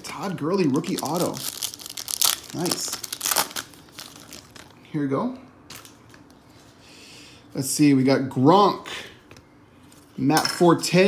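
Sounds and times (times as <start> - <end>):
foil wrapper crinkling and tearing: 0.2 - 4.8.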